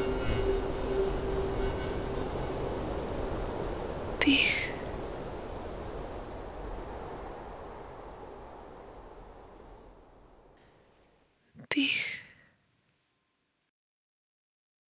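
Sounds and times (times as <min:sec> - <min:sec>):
held low tone: 0:00.0 - 0:10.3
breathy hissing backdrop: 0:00.0 - 0:13.2
person whispering: 0:04.2 - 0:05.0, 0:11.6 - 0:12.5.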